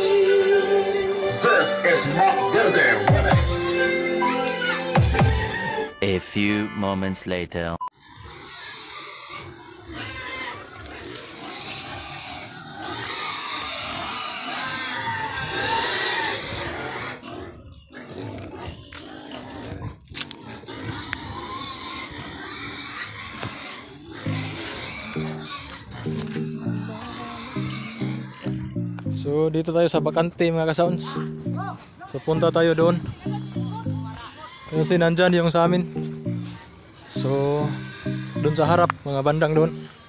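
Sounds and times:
pigs squealing and grunting: 0:00.0 - 0:03.9, 0:04.6 - 0:06.0, 0:08.0 - 0:28.8, 0:30.8 - 0:40.0
music playing: 0:00.0 - 0:07.0, 0:24.3 - 0:40.0.

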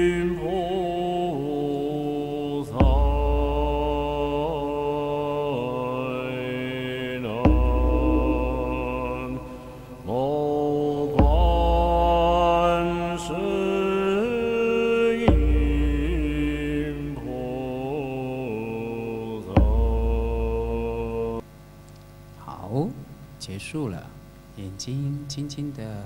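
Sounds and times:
voice chanting in held notes: 0:00.0 - 0:21.4
low musical accompaniment: 0:07.3 - 0:10.4, 0:15.2 - 0:17.6.

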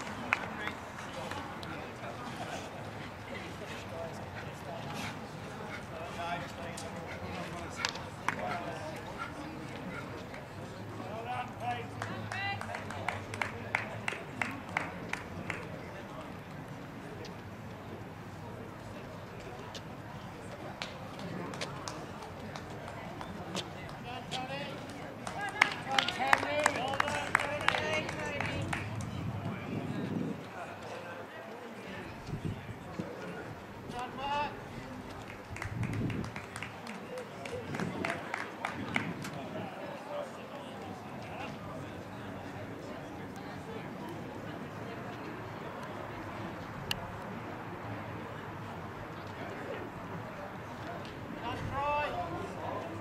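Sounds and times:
people clapping: 0:00.0 - 0:02.4, 0:07.6 - 0:10.6, 0:11.4 - 0:16.0, 0:20.6 - 0:29.2, 0:35.0 - 0:39.5
low murmur: 0:00.0 - 0:12.2.

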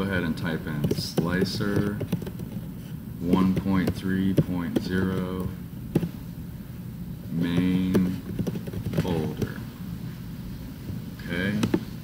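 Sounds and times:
keyboard keystrokes: 0:07.6 - 0:09.5.

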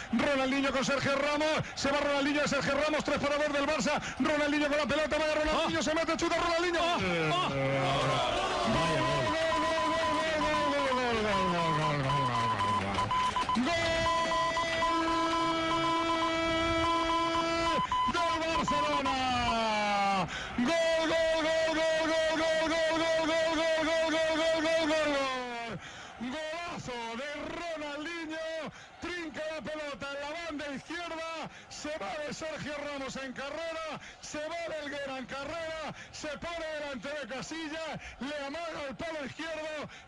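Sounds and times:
commentator shouting: 0:00.0 - 0:40.0.

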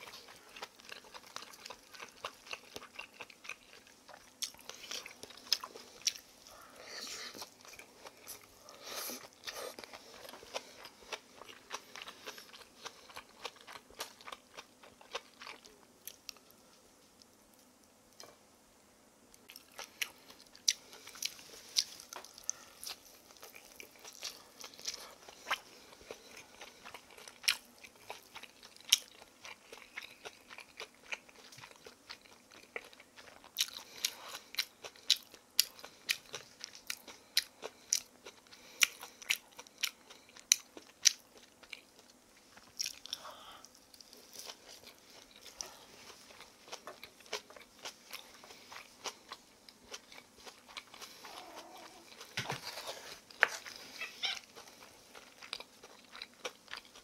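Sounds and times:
crunchy chewing of fried pancake: 0:00.0 - 0:18.3, 0:19.4 - 0:57.0.

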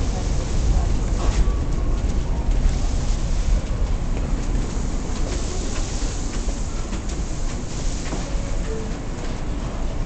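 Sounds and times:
subway car rumbling on rails: 0:00.0 - 0:10.0.

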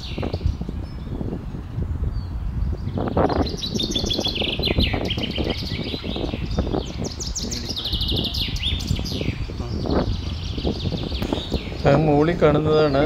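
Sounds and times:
small birds chirping and trilling: 0:00.0 - 0:13.0
wind rumble on microphone: 0:00.0 - 0:13.0.

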